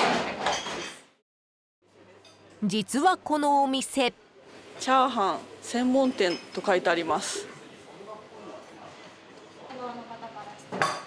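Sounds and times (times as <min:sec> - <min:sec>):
dishes and cutlery clattering: 0:00.0 - 0:01.1, 0:10.7 - 0:11.0.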